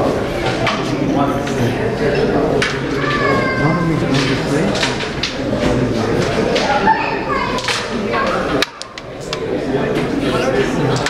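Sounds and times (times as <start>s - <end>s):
background chatter of voices: 0.0s - 11.0s
children's voices: 0.0s - 11.0s.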